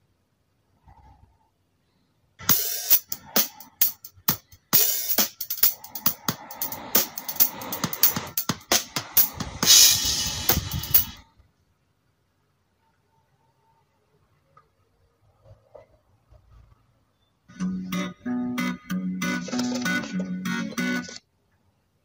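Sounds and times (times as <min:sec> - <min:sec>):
drum kit playing: 0:02.5 - 0:11.1
cymbal wash: 0:09.6 - 0:11.0.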